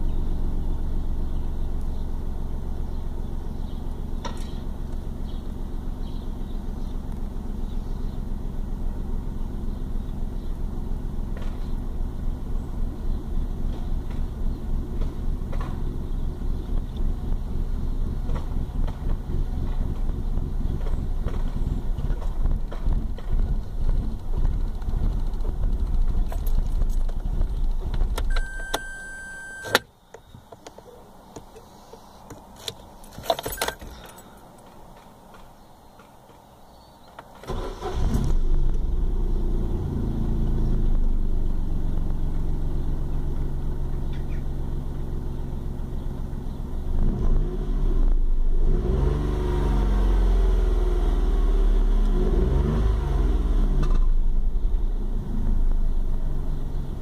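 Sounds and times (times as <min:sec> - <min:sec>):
car engine idling: 0:00.0 - 0:35.6, 0:37.4 - 0:47.1
high steady tone: 0:28.3 - 0:29.8
keys rattling: 0:32.5 - 0:34.5.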